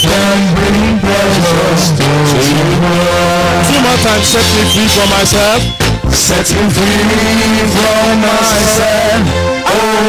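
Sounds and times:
people singing a hymn: 0.0s - 5.0s, 6.2s - 10.0s
drums: 0.0s - 9.5s
keyboard: 0.0s - 10.0s.

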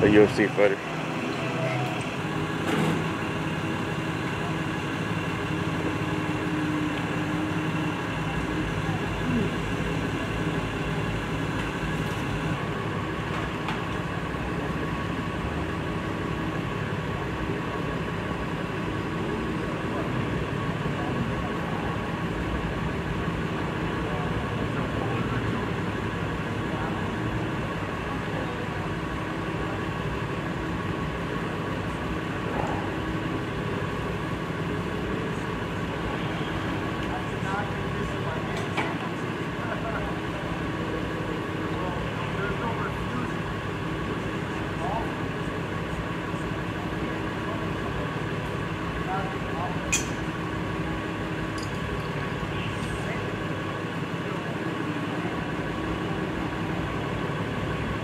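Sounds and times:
faint voices: 0.0s - 12.8s, 16.7s - 58.0s
steady mechanical hum: 0.0s - 58.0s.

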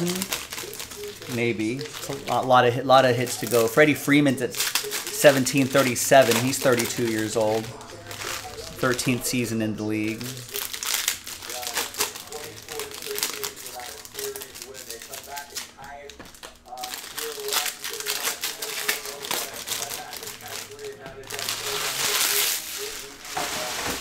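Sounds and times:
foil wrappers crinkling and tearing: 0.0s - 24.0s.

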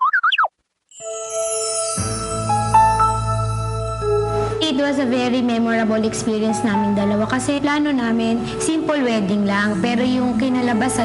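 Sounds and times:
held musical chord: 0.9s - 7.3s.

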